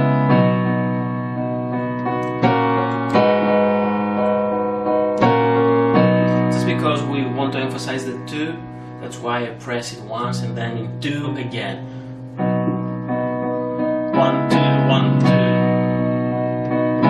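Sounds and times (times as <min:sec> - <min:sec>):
piano playing slow chords: 0:00.0 - 0:17.0.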